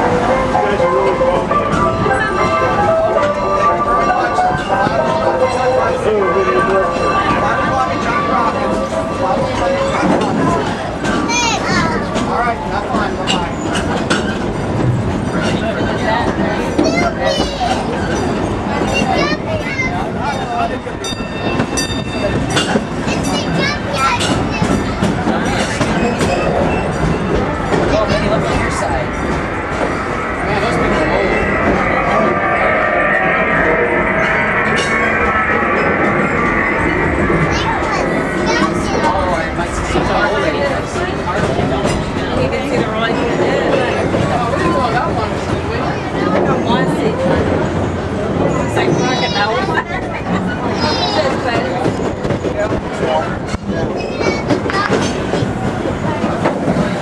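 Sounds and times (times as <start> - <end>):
passengers talking: 0.0 - 57.0
train cars rumbling on track: 0.0 - 57.0
high steady tone: 27.8 - 41.0.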